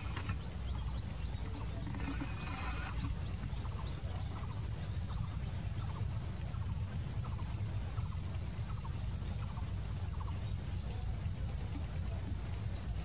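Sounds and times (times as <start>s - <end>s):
birds chirping: 0.0s - 13.0s
distant diesel locomotive rumble: 0.0s - 13.0s.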